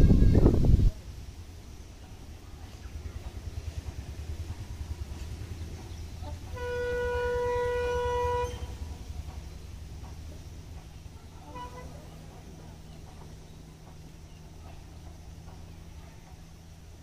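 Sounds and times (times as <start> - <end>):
low background rumble: 0.0 - 17.0
train horn blast: 6.2 - 9.0, 11.1 - 12.6.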